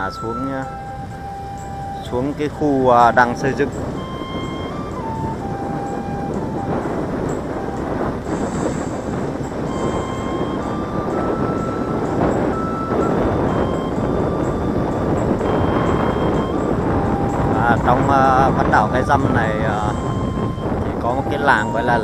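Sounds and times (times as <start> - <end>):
tyres on road: 0.0 - 22.0
wind on microphone: 0.0 - 22.0.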